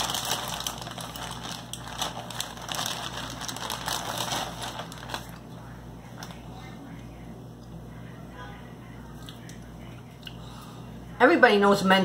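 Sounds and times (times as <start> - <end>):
snack packaging crinkling: 0.0 - 5.5.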